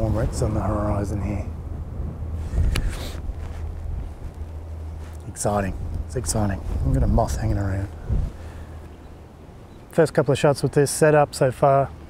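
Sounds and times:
wind buffeting microphone: 0.0s - 9.8s.

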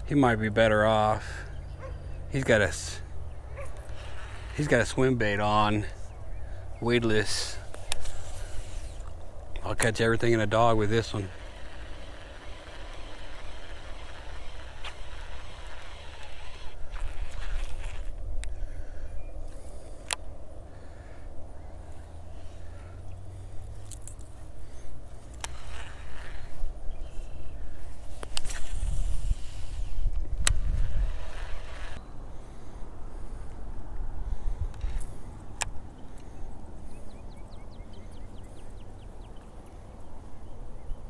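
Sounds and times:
wind rumbling on microphone: 1.7s - 41.0s
fishing reel clicks: 9.8s - 18.5s, 25.3s - 27.3s, 30.4s - 32.0s.

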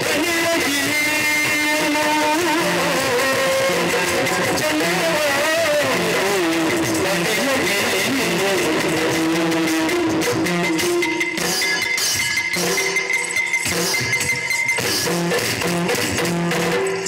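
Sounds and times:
drum strokes: 0.0s - 17.0s.

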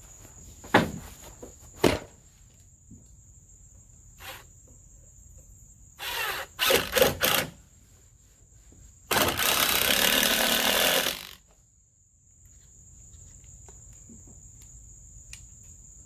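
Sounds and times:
cordless drill driving screws: 6.0s - 7.5s, 9.1s - 11.4s.

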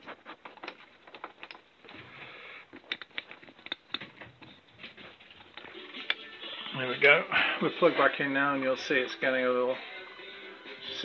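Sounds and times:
cables and connectors clicking: 2.7s - 4.6s.

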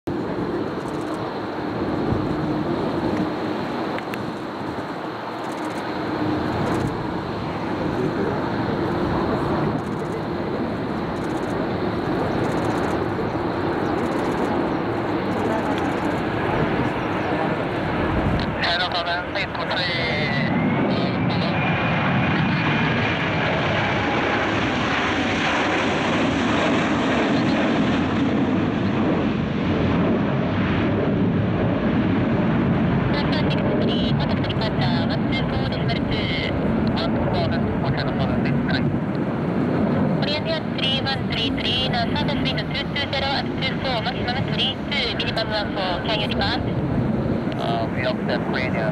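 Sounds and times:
high jet engine whine: 0.1s - 48.9s
jet engine rumble: 0.1s - 48.9s.

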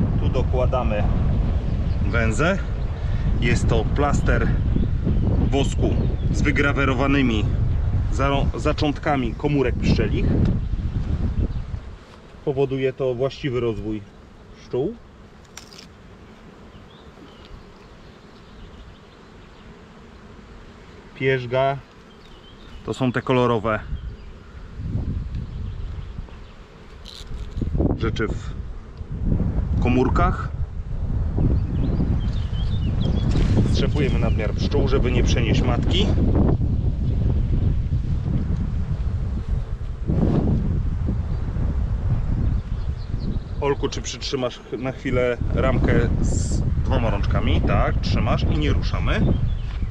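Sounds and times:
wind buffeting microphone: 0.0s - 12.0s, 23.6s - 26.6s, 27.2s - 49.9s
honeybees buzzing: 0.0s - 49.9s.

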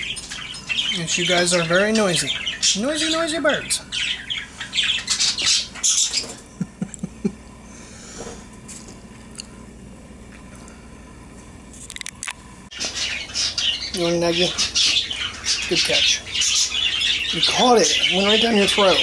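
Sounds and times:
budgerigars chattering and squawking: 0.0s - 6.4s, 12.7s - 19.0s.

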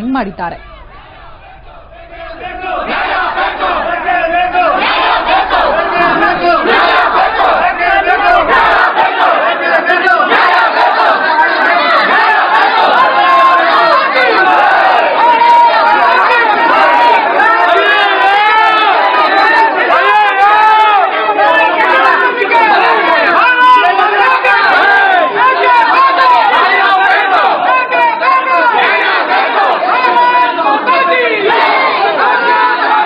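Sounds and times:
crowd shouting: 0.0s - 33.0s.

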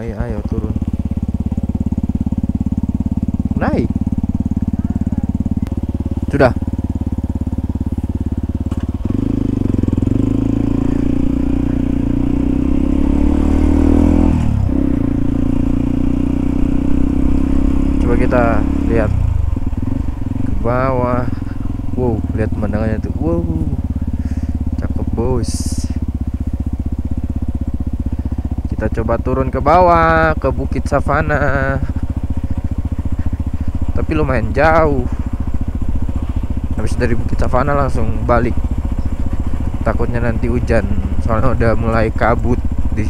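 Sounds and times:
motorcycle engine revving: 0.0s - 43.0s.

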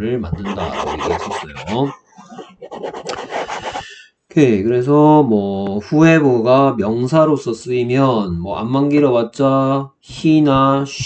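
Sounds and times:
stylus scratching on tablet: 0.0s - 3.9s.

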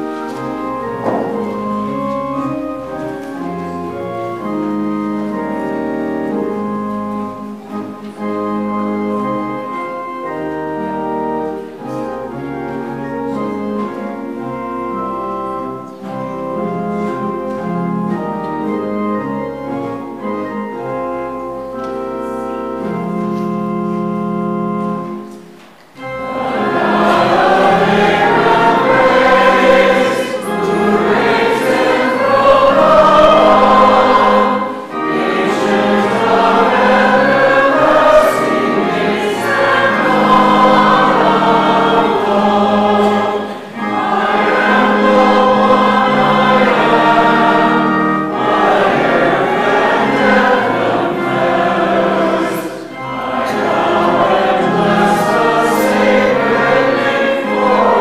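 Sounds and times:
congregation singing a hymn: 0.0s - 58.0s
organ: 0.0s - 58.0s.

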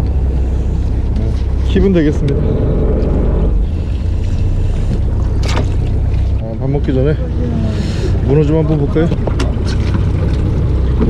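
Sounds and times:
boat engine rumble: 0.0s - 11.0s.

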